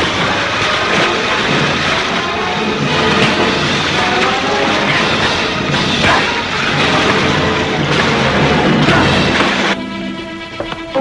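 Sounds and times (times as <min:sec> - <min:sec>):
heavy water splashing: 0:00.0 - 0:09.8
dramatic background music: 0:00.0 - 0:11.0.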